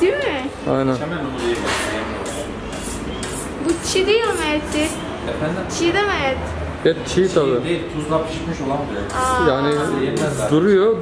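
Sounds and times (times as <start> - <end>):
shop room noise: 0.0 - 11.0.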